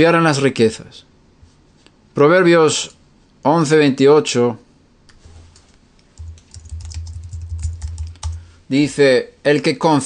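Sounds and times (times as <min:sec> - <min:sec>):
keyboard typing clicks: 0:06.0 - 0:08.4.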